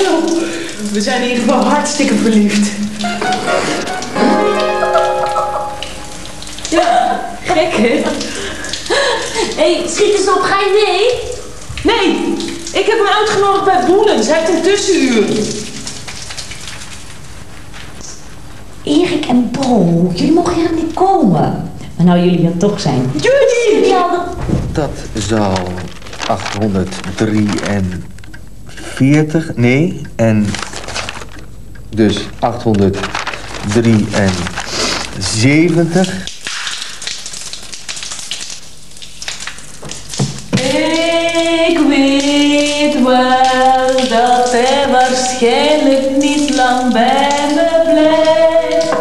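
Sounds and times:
shower water spraying: 0.0 - 21.3, 23.2 - 28.1, 32.0 - 49.0.

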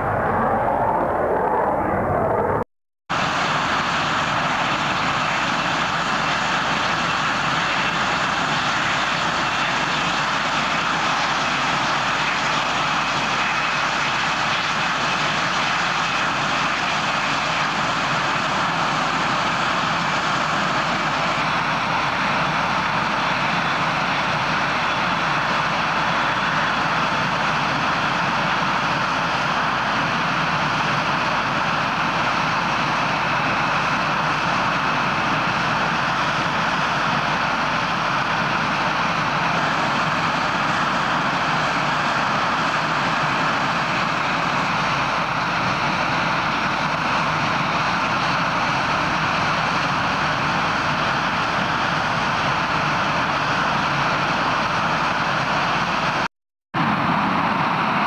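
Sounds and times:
loud jet engine noise: 0.0 - 58.0.

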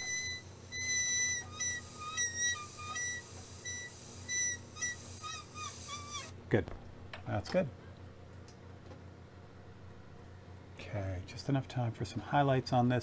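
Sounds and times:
airbrush spraying: 1.5 - 6.3.

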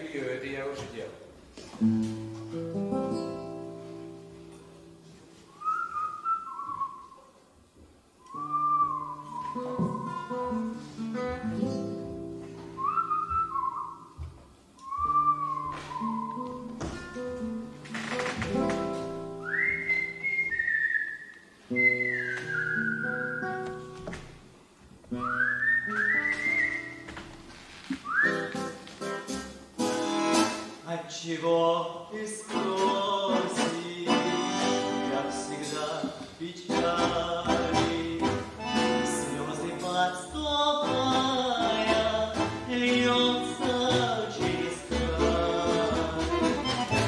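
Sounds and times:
whistled melody: 5.5 - 7.3, 8.2 - 10.8, 12.7 - 14.2, 14.8 - 16.7, 19.4 - 23.8, 25.2 - 27.1, 28.0 - 28.8
plucked strings and double bass: 36.0 - 47.0.

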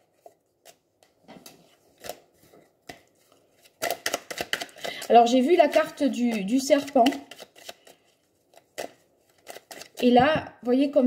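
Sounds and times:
cards being shuffled: 0.0 - 10.2.

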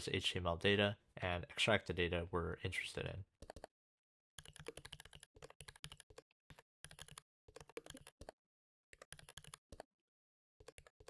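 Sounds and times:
typing on computer keyboard: 3.4 - 3.7, 4.4 - 8.4, 9.0 - 9.9, 10.6 - 11.0.

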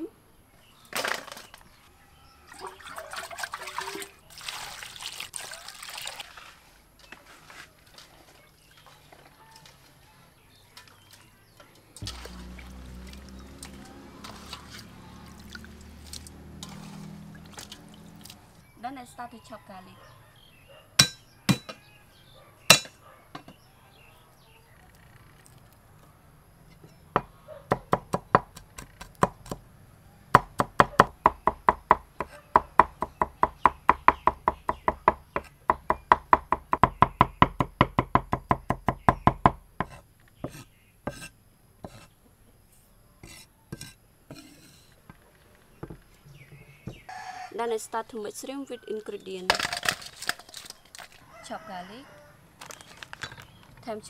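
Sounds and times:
cleaver chopping on wooden board: 21.0 - 21.8, 22.7 - 22.9, 27.2 - 29.6, 30.4 - 42.1.

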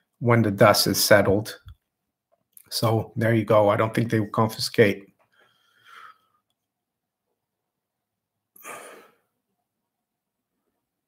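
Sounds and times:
man sighing: 8.6 - 9.2.

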